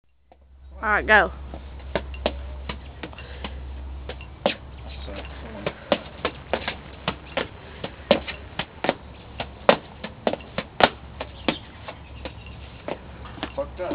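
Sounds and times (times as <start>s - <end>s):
steady low hum: 0.1s - 13.9s.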